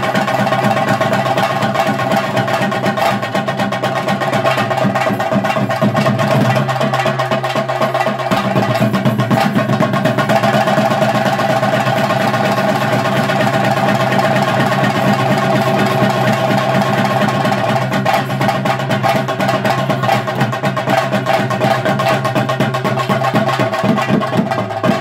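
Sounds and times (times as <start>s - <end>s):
drums played in fast strokes: 0.0s - 25.0s.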